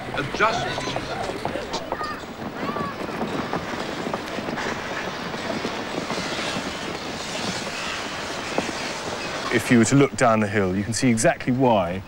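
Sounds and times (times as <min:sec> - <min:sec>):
crackling rumble: 0:00.0 - 0:11.4.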